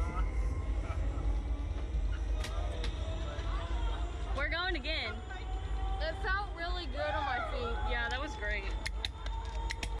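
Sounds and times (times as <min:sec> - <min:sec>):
low rumble: 0:00.0 - 0:10.0
people's voices: 0:00.0 - 0:10.0.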